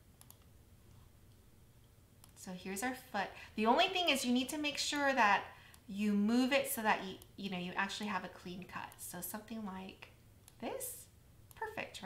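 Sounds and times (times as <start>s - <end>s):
computer mouse clicks: 0.2s - 0.5s, 2.2s - 2.4s, 10.4s - 10.6s.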